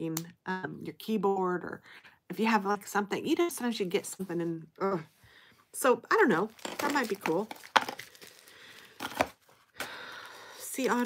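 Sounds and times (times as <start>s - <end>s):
plastic packaging rustling: 6.3s - 11.0s
plastic crinkling: 6.4s - 11.0s.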